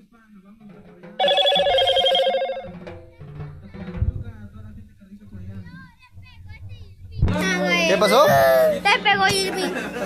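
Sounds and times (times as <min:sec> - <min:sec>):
loud trilling ringing tone: 0:01.2 - 0:02.8.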